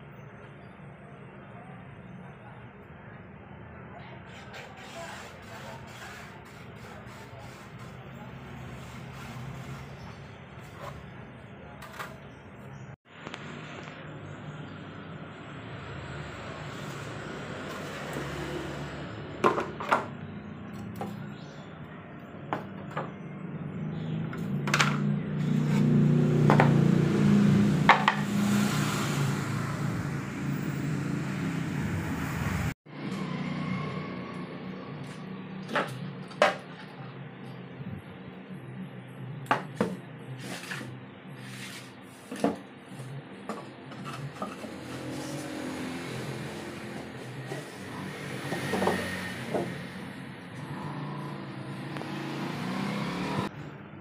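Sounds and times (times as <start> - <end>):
plywood panels knocking on tile floor: 27.9 - 28.2
plywood boards scraping: 40.4 - 42.6.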